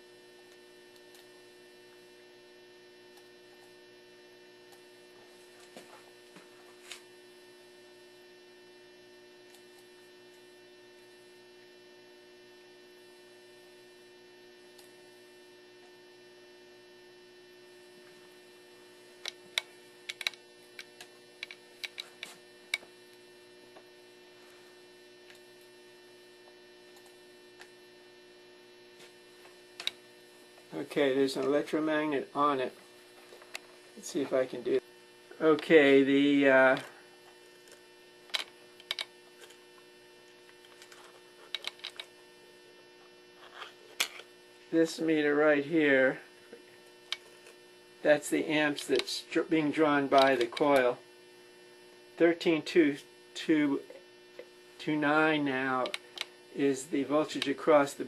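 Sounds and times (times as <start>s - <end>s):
electrical hum: 0.0s - 58.0s
sharp clicks and knocks: 19.2s - 22.9s, 38.3s - 39.1s, 40.8s - 42.1s, 55.8s - 56.3s.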